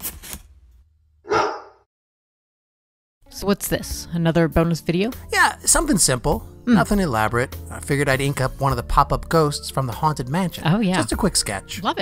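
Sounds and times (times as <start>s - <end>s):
dog bark: 1.3s - 1.9s.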